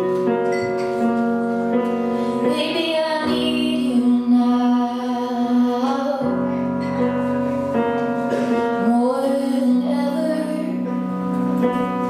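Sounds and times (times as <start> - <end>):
woman singing: 2.4 - 6.8, 8.6 - 11.0.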